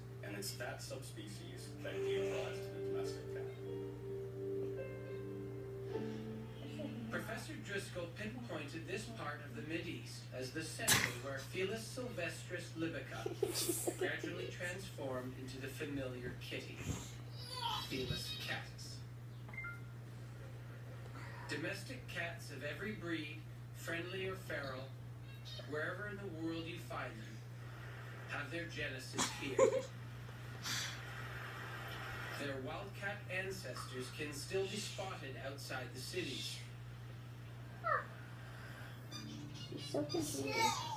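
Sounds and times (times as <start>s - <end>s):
steady low hum: 0.0s - 40.9s
cat meowing: 37.8s - 38.2s.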